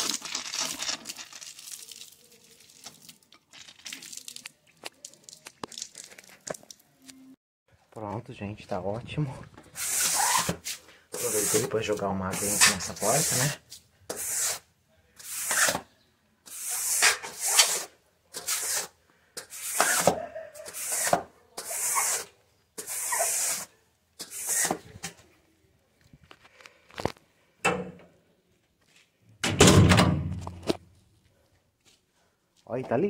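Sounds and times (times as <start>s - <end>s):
squeegee swishing water on tiles: 0.0s - 6.8s, 9.8s - 14.6s, 15.2s - 15.8s, 16.5s - 24.9s
squeegee scraping: 9.7s - 15.9s, 16.5s - 25.2s.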